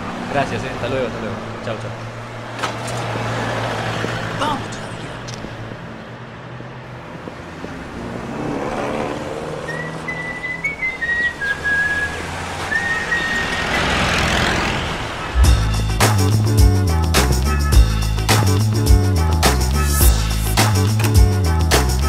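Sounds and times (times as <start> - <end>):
road traffic rumble: 0.0 - 22.0
person whistling a tune: 9.7 - 13.6
music with strong bass beat: 15.4 - 22.0.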